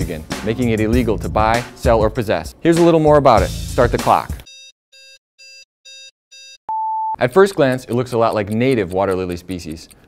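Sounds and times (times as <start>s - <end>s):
short buzzy timer beeps: 4.5s - 9.0s
long high timer beep: 4.5s - 9.2s.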